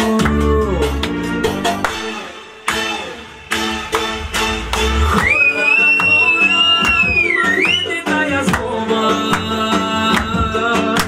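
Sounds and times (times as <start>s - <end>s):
dance music with steady beat: 0.0s - 11.0s.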